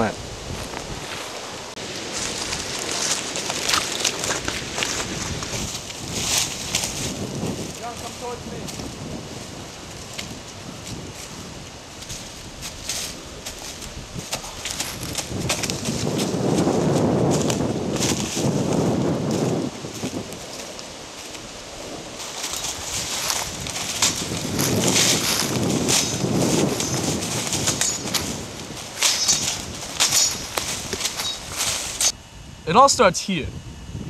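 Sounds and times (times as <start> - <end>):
footsteps through dry leaves: 0.3 - 32.2.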